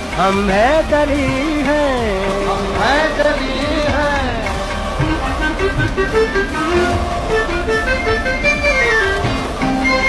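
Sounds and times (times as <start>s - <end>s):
instrumental melody over low beat: 0.0s - 10.0s.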